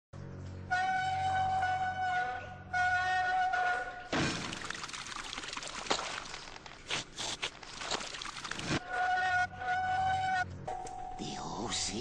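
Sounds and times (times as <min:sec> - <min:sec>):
flute-like music: 0:00.6 - 0:04.1, 0:08.8 - 0:11.2
liquid pouring from a pipe: 0:04.1 - 0:08.8
sharp splashes or knocks: 0:04.1 - 0:08.8.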